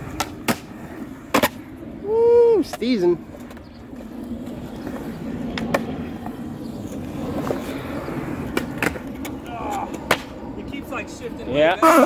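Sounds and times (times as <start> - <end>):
skateboard wheels rolling on concrete: 0.0 - 12.0
skateboard clacking on ledge: 8.5 - 10.3.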